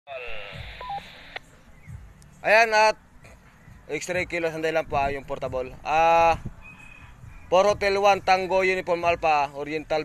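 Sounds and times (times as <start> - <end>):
two-tone roger beep: 0.1 - 1.4
radio hiss: 0.1 - 1.5
radio squelch click: 0.6 - 1.5.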